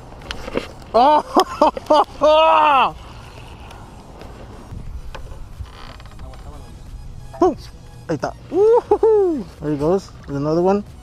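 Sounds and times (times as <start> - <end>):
wind rumble: 0.0 - 11.0
microphone handling noise: 3.0 - 7.2.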